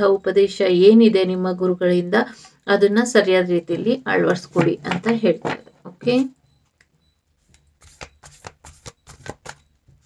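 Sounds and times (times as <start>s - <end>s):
cards being shuffled: 7.4s - 9.6s.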